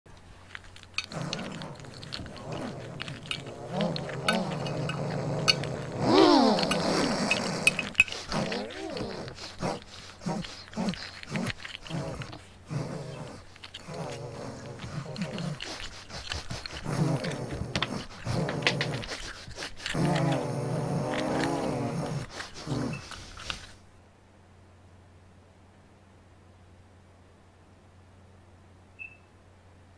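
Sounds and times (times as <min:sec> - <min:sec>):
creature growls: 0:01.0 - 0:23.1.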